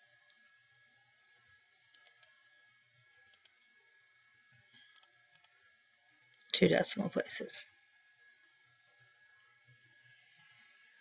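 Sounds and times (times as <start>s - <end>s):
faint computer mouse clicks: 1.9s - 2.4s, 3.3s - 3.6s, 4.8s - 5.5s.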